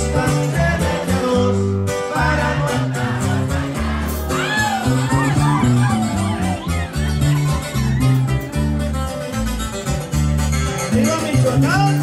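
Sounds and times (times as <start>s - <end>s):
electric bass line: 0.0s - 12.0s
strummed and plucked guitars: 0.0s - 12.0s.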